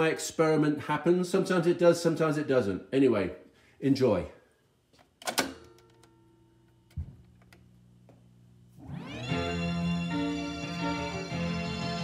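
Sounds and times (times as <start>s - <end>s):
faint steady hum: 3.1s - 8.9s
music from speakers: 8.9s - 12.0s.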